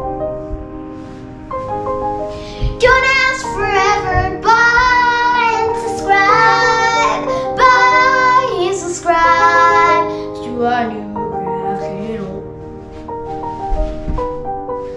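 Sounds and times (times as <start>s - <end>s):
background instrumental music: 0.0s - 14.9s
girl singing: 2.4s - 12.4s.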